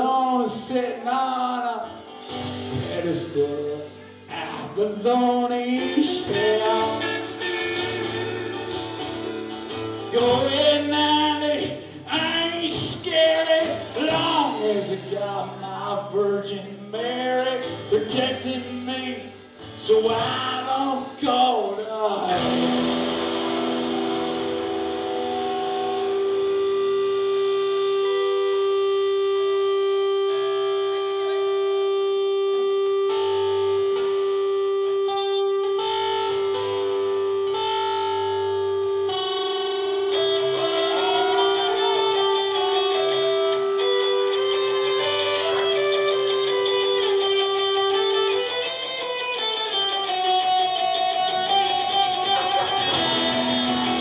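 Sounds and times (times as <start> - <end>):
strummed acoustic guitar: 0.0 - 31.9, 33.0 - 54.0
distorted electric guitar: 0.0 - 54.0
live band playing: 0.0 - 54.0.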